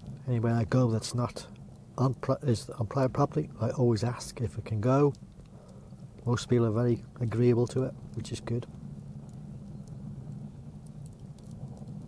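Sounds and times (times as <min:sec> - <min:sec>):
fire crackling: 0:00.0 - 0:12.0
low steady hum: 0:00.0 - 0:12.0.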